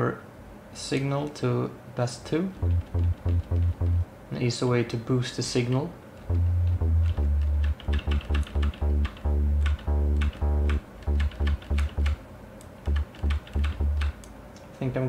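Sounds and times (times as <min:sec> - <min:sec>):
overdriven synth bass notes: 0:02.6 - 0:04.1, 0:06.3 - 0:12.2, 0:12.9 - 0:14.2.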